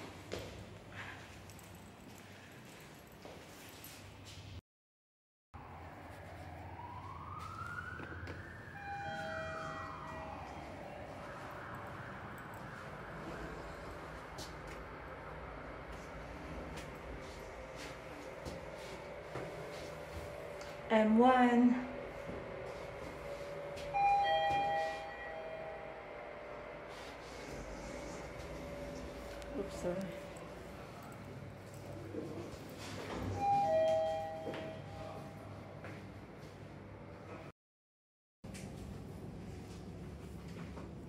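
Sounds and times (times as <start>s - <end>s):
siren wail: 5.6s - 31.8s
lift chime: 8.8s - 11.2s, 23.0s - 26.7s, 33.2s - 35.3s.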